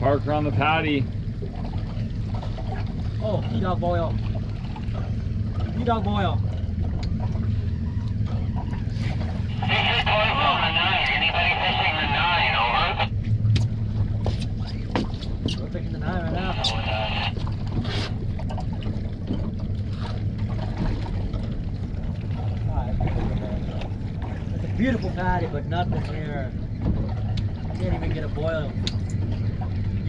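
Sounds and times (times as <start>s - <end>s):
outboard motor idling: 0.0s - 30.0s
water: 0.0s - 30.0s
wind: 0.0s - 30.0s
tinny radio voice chatter: 9.5s - 13.1s, 16.3s - 17.4s.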